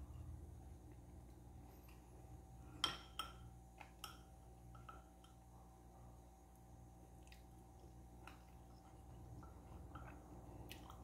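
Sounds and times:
spoon clinking ceramic bowl: 0:02.8 - 0:05.4.

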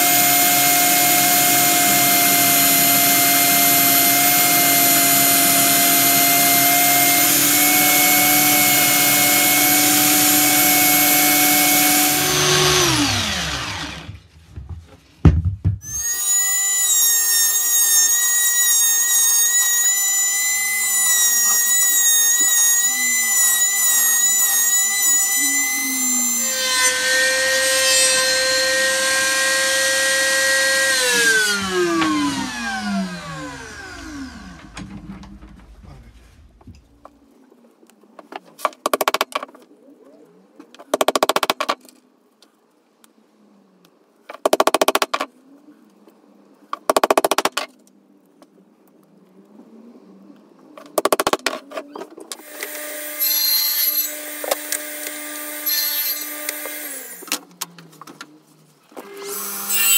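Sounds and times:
electric sander running: 0:00.0 - 0:14.3, 0:19.1 - 0:34.8
electric wood router whining: 0:00.0 - 0:14.3, 0:15.8 - 0:35.9, 0:52.3 - 0:58.1, 0:58.9 - 0:59.9.

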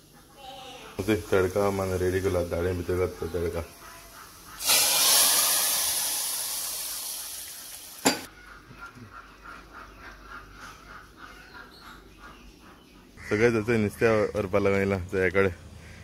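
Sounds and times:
hot oil sizzling: 0:01.0 - 0:03.6, 0:04.5 - 0:08.3.

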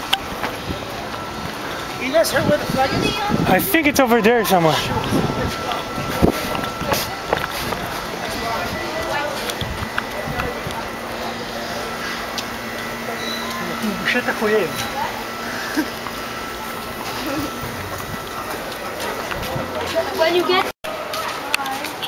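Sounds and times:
people talking: 0:00.0 - 0:22.0
footsteps and camera rustle: 0:04.8 - 0:13.6, 0:15.9 - 0:22.0.

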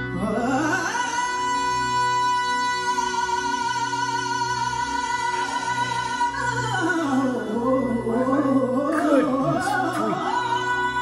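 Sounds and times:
instrumental backing music: 0:00.0 - 0:11.0
man singing a long high note: 0:07.2 - 0:11.0.

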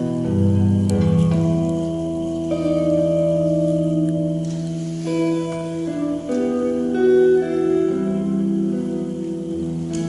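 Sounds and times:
jazz trio playing slow held notes: 0:00.0 - 0:10.0.

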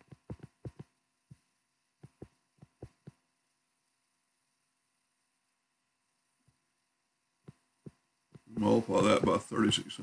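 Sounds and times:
stylus tapping on tablet screen: 0:00.0 - 0:03.3, 0:07.4 - 0:09.4.

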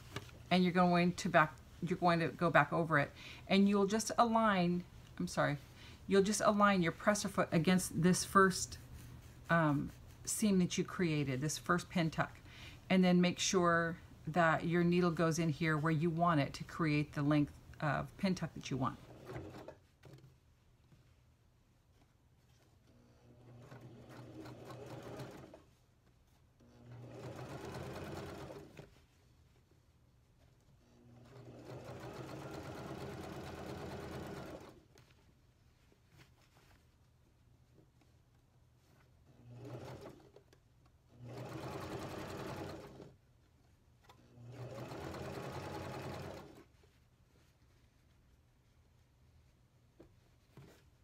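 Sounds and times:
electric sewing machine stitching: 0:23.2 - 0:25.6, 0:26.8 - 0:28.8, 0:31.0 - 0:34.8, 0:39.4 - 0:40.4, 0:41.2 - 0:43.1, 0:44.4 - 0:46.6.

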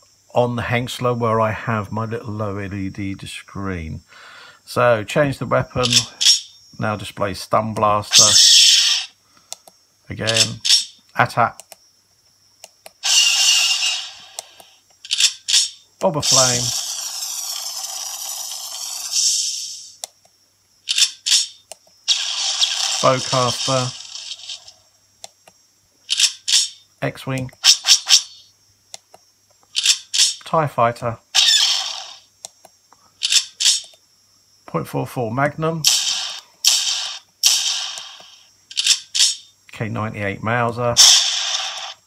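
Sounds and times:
blaster hissing burst: 0:08.1 - 0:09.1, 0:13.0 - 0:14.4, 0:16.2 - 0:20.0, 0:22.1 - 0:24.8, 0:31.4 - 0:32.3, 0:35.8 - 0:39.3, 0:41.0 - 0:42.0
faint clicks: 0:09.3 - 0:10.5, 0:11.1 - 0:11.8.

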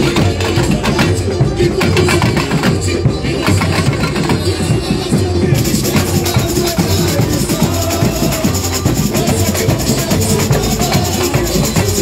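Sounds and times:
samba drum section playing: 0:00.0 - 0:12.0.

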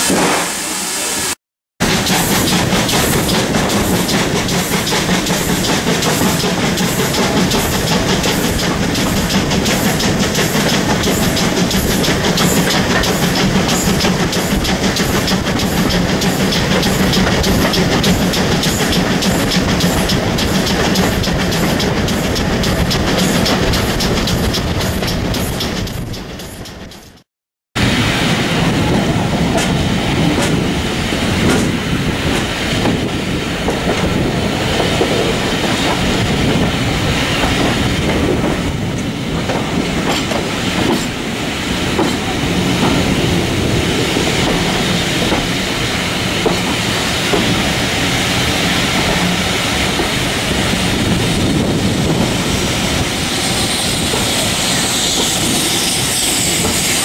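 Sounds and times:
train running noise: 0:00.0 - 0:57.0
train wheels clicking over rail joints: 0:01.8 - 0:27.3, 0:28.6 - 0:57.0.

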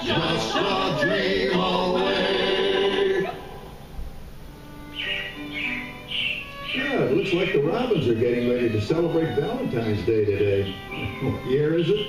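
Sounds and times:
show music with singing: 0:00.0 - 0:03.8
short high chirps: 0:04.9 - 0:07.5.

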